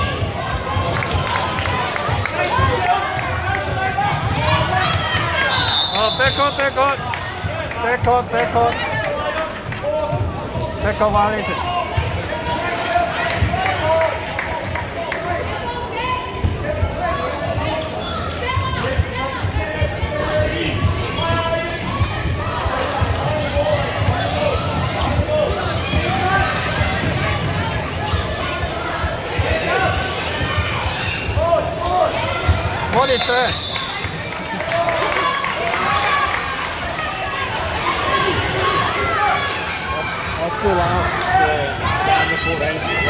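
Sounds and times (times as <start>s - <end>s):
indistinct voices in sports hall: 0.0s - 43.0s.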